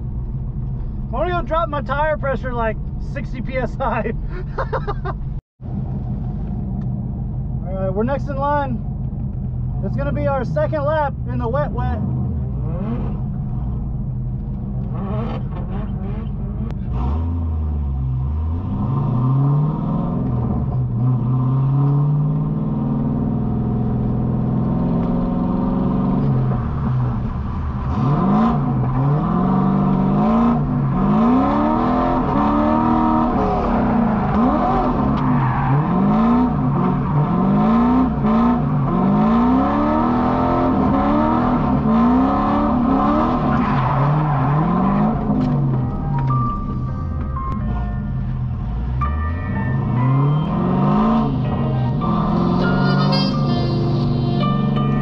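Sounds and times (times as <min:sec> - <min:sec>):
car engine revving: 0:05.7 - 0:55.0.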